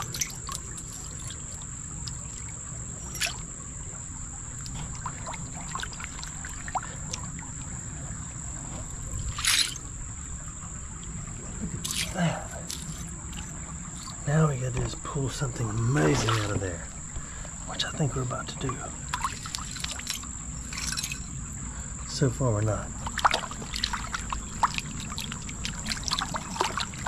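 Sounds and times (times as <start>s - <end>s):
splashes and stones knocking: 0.0s - 3.6s, 4.5s - 7.7s, 8.7s - 10.0s, 11.0s - 21.4s, 22.9s - 27.0s
high-pitched insect buzz: 0.0s - 7.5s
flowing water: 0.0s - 27.0s.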